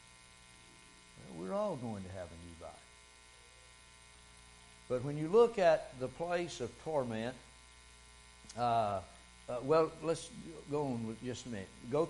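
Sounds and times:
faint electrical mains hum: 0:00.0 - 0:12.0
man speaking: 0:01.2 - 0:02.9, 0:04.9 - 0:07.4, 0:08.5 - 0:12.0.

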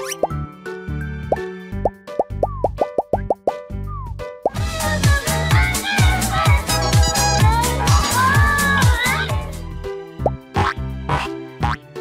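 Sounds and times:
bouncy children's music: 0:00.0 - 0:12.0
cartoon plop sound effects: 0:02.2 - 0:03.6.

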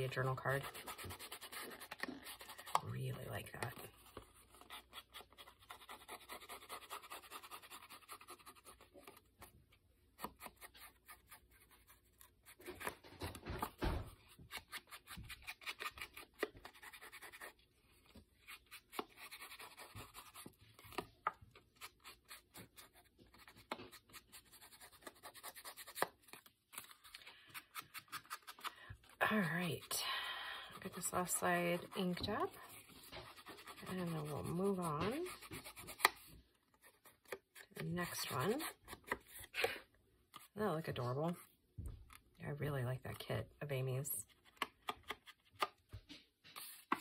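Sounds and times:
foam tool scratching on paper: 0:00.1 - 0:02.8, 0:03.8 - 0:09.2, 0:30.8 - 0:38.8.

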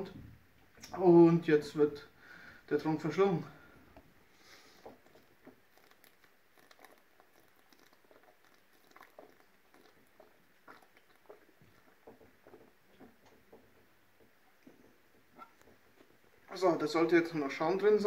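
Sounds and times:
man gulping from bottle: 0:03.4 - 0:16.7.

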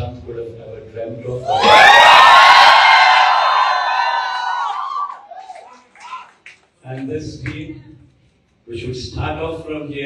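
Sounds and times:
crowd cheering and whooping: 0:01.4 - 0:06.3.

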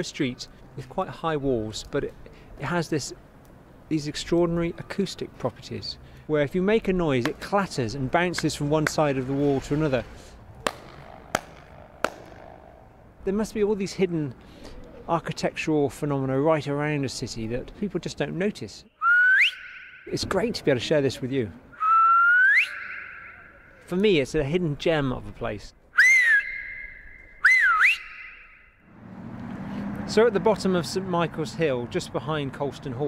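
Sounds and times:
hand claps with flutter echo: 0:10.7 - 0:12.3
person whistling swooping note: 0:19.0 - 0:20.2, 0:21.8 - 0:23.9, 0:26.0 - 0:28.8.

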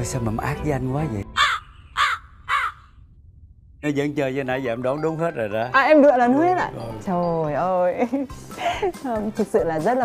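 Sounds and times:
crow cawing: 0:01.3 - 0:03.0.

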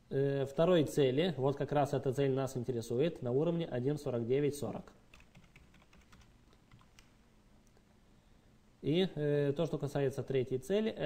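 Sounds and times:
computer keyboard keystrokes: 0:05.1 - 0:07.2.

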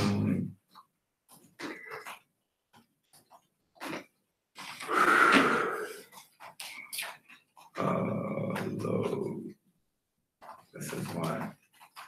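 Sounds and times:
person murmuring: 0:07.8 - 0:09.5.

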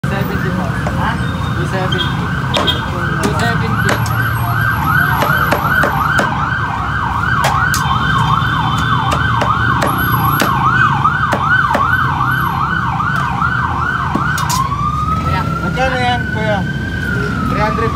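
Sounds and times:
siren wailing in a fast yelp: 0:01.3 - 0:17.9
cleaver chopping on wooden block: 0:05.1 - 0:06.4, 0:08.9 - 0:10.7, 0:11.3 - 0:12.0.

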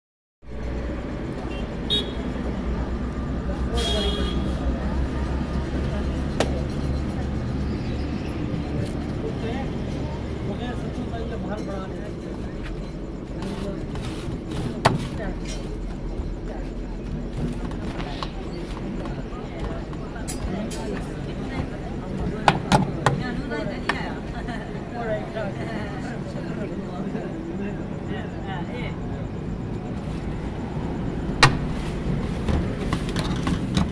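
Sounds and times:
faint indistinct voices: 0:00.5 - 0:33.9
low engine-like hum: 0:00.5 - 0:33.9.

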